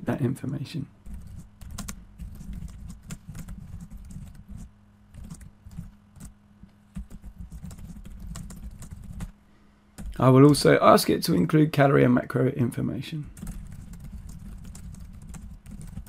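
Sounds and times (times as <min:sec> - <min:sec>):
faint low hum: 0:00.0 - 0:16.0
computer keyboard typing: 0:01.1 - 0:06.3, 0:07.0 - 0:09.3, 0:10.0 - 0:10.6, 0:13.3 - 0:16.0.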